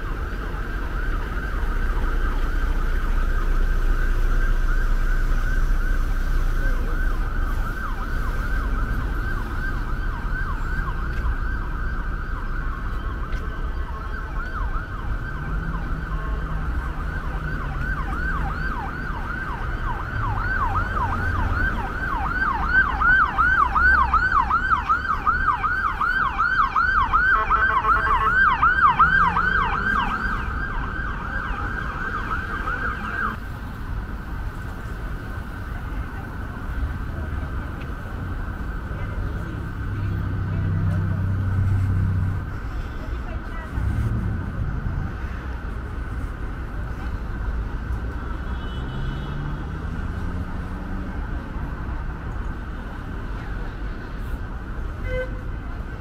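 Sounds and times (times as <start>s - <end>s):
siren yelping: 0.0s - 33.4s
street traffic rumble: 0.0s - 56.0s.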